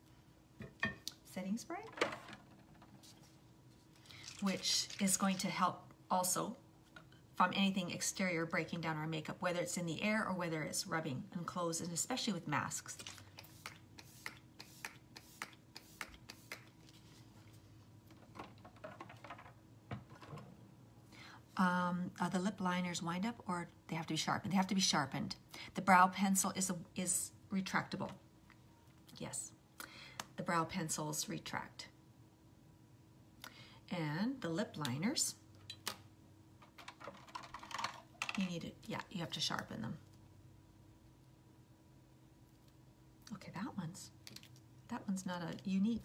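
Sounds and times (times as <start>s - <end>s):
small plastic items clicking and tapping: 36.6s - 38.5s.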